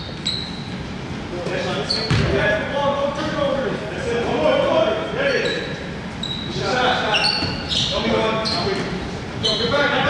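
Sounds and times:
sneakers squeaking: 0:00.0 - 0:03.0, 0:05.2 - 0:10.0
players' voices: 0:01.2 - 0:10.0
basketball bouncing on wooden floor: 0:02.1 - 0:02.3.

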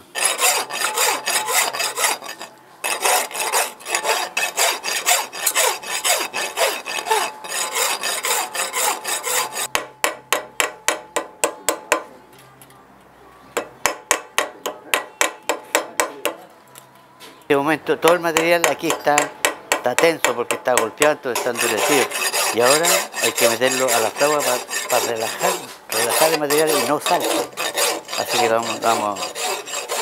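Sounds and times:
hand saw cutting steel: 0:00.0 - 0:09.8, 0:20.0 - 0:30.0.

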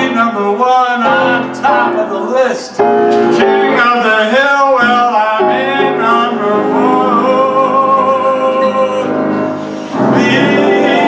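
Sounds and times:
man singing with vibrato: 0:00.0 - 0:11.0
piano accompaniment: 0:00.0 - 0:11.0.

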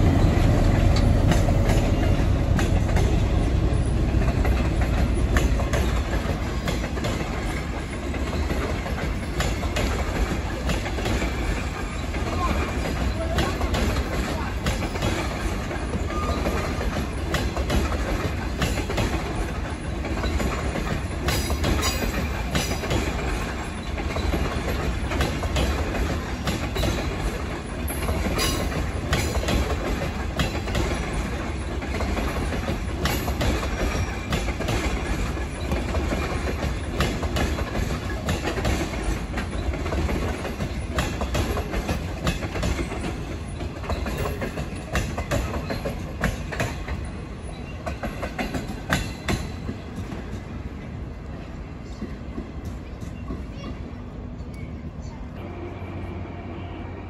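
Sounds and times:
train wheels clicking over rail joints: 0:00.0 - 0:54.8
train rumble: 0:00.0 - 0:57.0.

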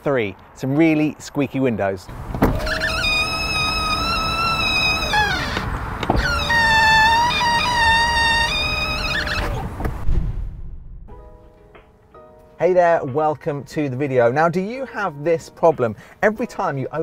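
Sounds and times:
window glass squeaking against seals: 0:02.1 - 0:09.8.

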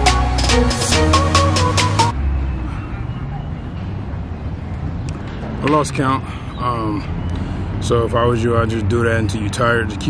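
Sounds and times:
electronic music: 0:00.0 - 0:02.2
low city rumble: 0:00.0 - 0:10.0.

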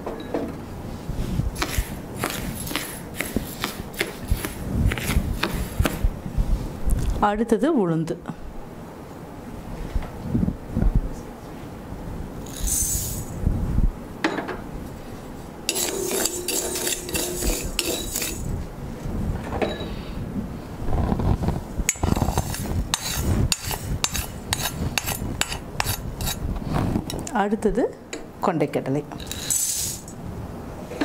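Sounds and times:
spoon scraping grains in pan: 0:15.7 - 0:18.6, 0:21.9 - 0:26.4, 0:29.2 - 0:30.1.

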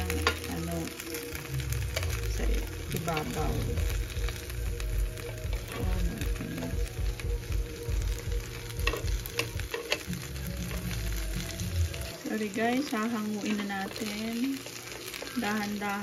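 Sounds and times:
popping fat crackles: 0:00.0 - 0:16.0
ribs sizzling on a grill: 0:00.0 - 0:16.0
low rumble: 0:01.4 - 0:12.2.

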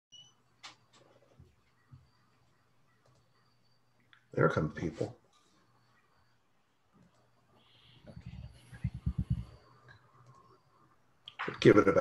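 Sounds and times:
faint high beep: 0:00.1 - 0:00.5, 0:07.6 - 0:10.1
faint clicks: 0:02.9 - 0:03.4, 0:06.9 - 0:10.6
low hum: 0:05.6 - 0:11.1.

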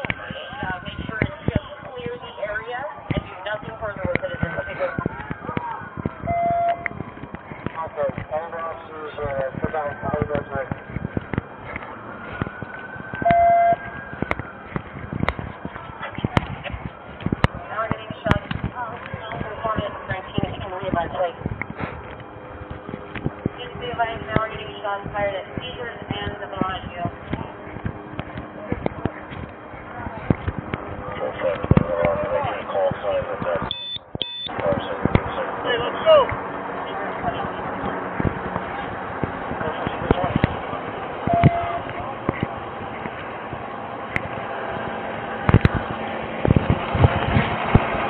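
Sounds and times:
footsteps: 0:00.0 - 0:48.0
siren rising and falling: 0:02.9 - 0:16.0
short beeps: 0:06.3 - 0:06.9, 0:13.2 - 0:13.8, 0:33.6 - 0:34.6, 0:41.3 - 0:41.9.

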